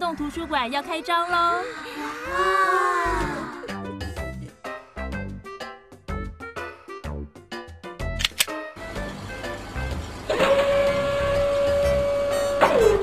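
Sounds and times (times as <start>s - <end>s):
hissing mechanical whir: 8.8s - 13.0s.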